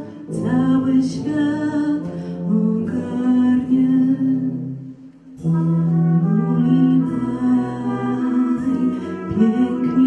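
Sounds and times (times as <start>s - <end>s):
woman singing: 0.0s - 10.0s
wind band of brass and saxophones: 5.4s - 10.0s.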